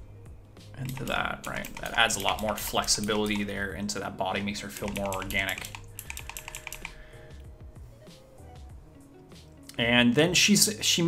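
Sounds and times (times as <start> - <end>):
faint background music: 0.0 - 11.0
computer keyboard clicks: 0.8 - 3.5, 4.8 - 7.0.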